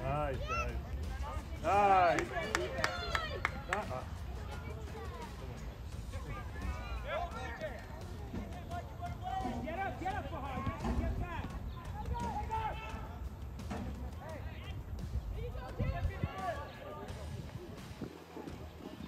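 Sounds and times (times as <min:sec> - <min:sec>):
people shouting and calling: 0:00.0 - 0:17.8.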